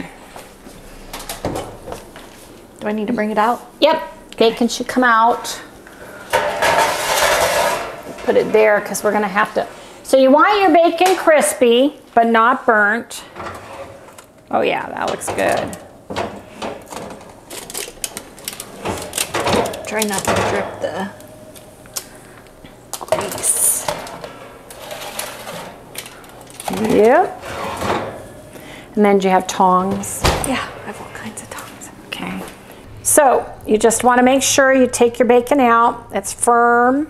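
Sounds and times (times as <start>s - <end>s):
metal oven door scraping open: 6.0s - 9.8s, 13.1s - 18.0s, 23.1s - 28.5s
metal baking sheet clanking: 6.3s - 9.6s, 13.2s - 21.2s, 23.1s - 28.4s.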